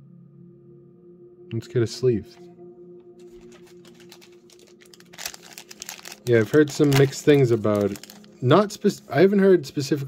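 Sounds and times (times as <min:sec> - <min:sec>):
plastic card sleeves rustling: 0:03.2 - 0:08.5.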